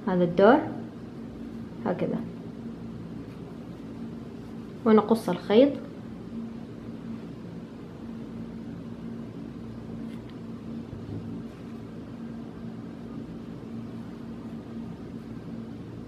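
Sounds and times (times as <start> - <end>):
low machine hum with hiss: 0.0 - 16.0.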